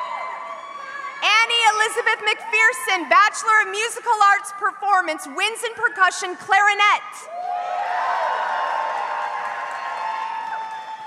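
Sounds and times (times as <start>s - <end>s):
audience cheering and whooping: 0.0s - 1.2s, 7.3s - 11.0s
applause: 7.6s - 11.0s.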